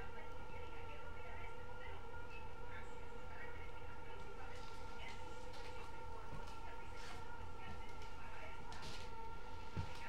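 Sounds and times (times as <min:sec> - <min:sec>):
faint television sound: 0:00.0 - 0:10.0
steady hum: 0:00.0 - 0:10.0.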